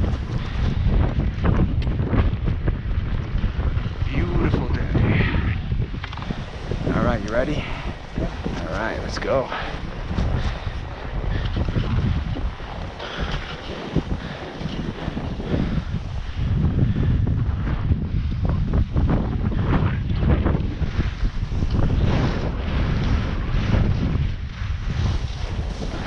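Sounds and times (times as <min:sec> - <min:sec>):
skis scraping packed snow: 0:00.0 - 0:17.0, 0:18.2 - 0:26.0
wind buffeting microphone: 0:00.0 - 0:26.0.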